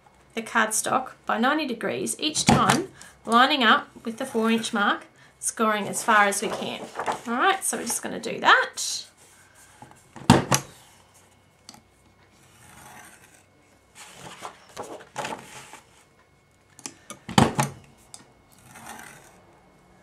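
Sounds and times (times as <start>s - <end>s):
paper sliding: 5.9s - 7.4s, 12.4s - 16.1s, 18.6s - 19.4s
bone folder scraping paper: 12.4s - 16.1s, 18.5s - 19.4s.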